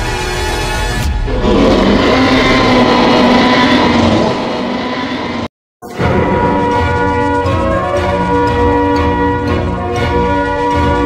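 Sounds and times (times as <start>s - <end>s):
rasping dinosaur roar: 1.3s - 5.5s.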